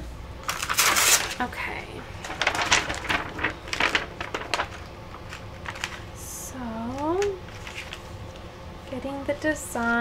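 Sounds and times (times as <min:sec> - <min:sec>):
plastic sheet crinkling: 0:00.4 - 0:08.4.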